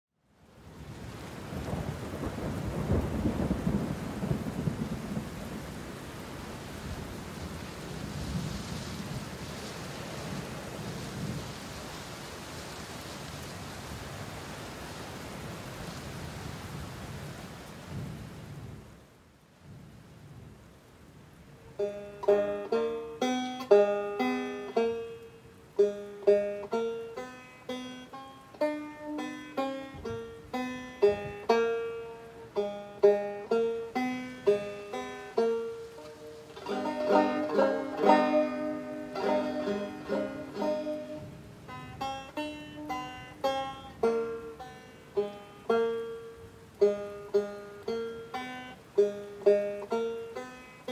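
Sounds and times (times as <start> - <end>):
steady rain: 0.1 - 50.9
rolling thunder: 0.8 - 11.9
banjo picking a tune: 21.7 - 50.9.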